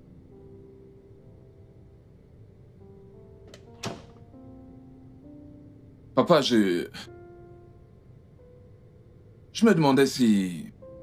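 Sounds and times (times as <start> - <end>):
soft background music: 0.0 - 11.0
door latch click: 3.5 - 4.3
wooden door thud: 3.5 - 4.3.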